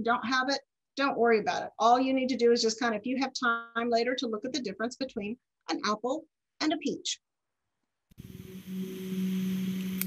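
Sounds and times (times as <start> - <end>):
background hiss: 8.1 - 10.0
steady low hum: 8.2 - 10.0
click: 9.8 - 10.0.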